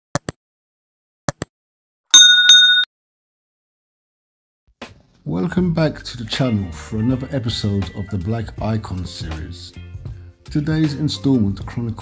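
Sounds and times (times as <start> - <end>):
notification bell chime: 2.2 - 2.9.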